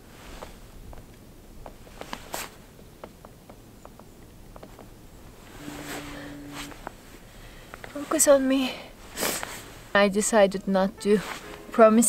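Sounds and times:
low hum: 3.6s - 12.0s.

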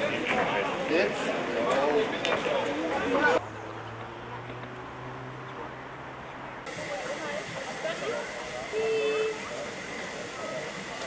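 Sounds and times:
short steady tone: 6.7s - 11.0s
steam locomotive hissing: 6.7s - 11.0s.

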